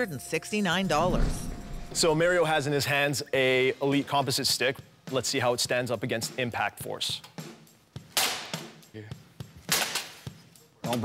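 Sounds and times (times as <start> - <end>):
hockey stick cracking against metal: 9.7 - 10.2.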